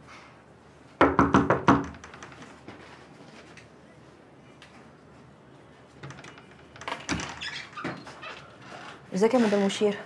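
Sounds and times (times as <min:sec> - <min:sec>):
knocking on wooden door: 0:01.0 - 0:02.2.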